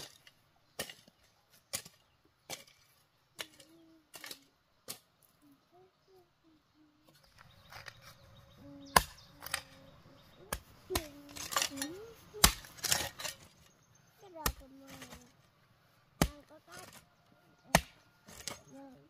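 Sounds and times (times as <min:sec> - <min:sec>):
hoe chopping into soil: 0:00.0 - 0:05.1, 0:17.7 - 0:18.7.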